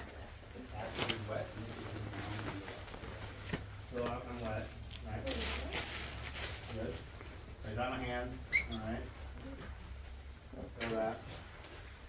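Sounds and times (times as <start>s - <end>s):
low room hum: 0.0s - 12.0s
rustling: 0.6s - 10.2s.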